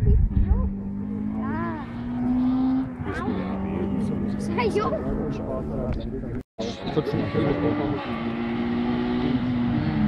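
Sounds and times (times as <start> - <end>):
distant rally car engine: 0.0 - 10.0.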